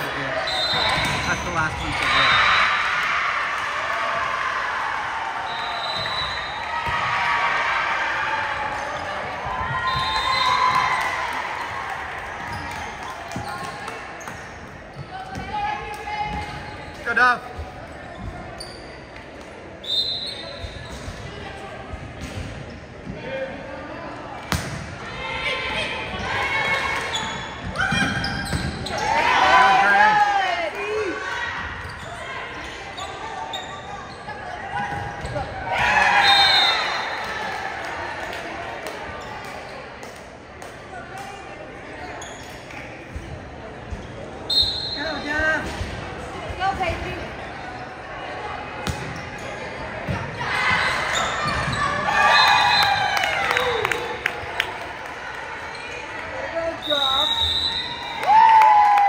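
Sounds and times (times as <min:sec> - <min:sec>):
shoes squeaking on court: 0:12.4 - 0:15.4, 0:16.3 - 0:19.3, 0:20.2 - 0:23.1, 0:26.6 - 0:29.2, 0:31.6 - 0:35.6, 0:41.9 - 0:45.8, 0:48.8 - 0:52.1
people shouting and cheering: 0:25.0 - 0:32.6, 0:34.4 - 0:38.9, 0:50.2 - 0:59.0.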